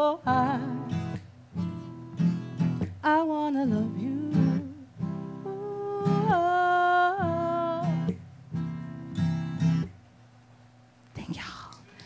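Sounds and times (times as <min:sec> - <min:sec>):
guitar music: 0:00.0 - 0:10.0
soft whispered voice: 0:11.1 - 0:12.0.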